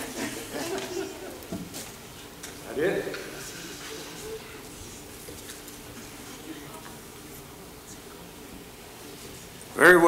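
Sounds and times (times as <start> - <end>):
murmur of voices: 2.6 - 10.0.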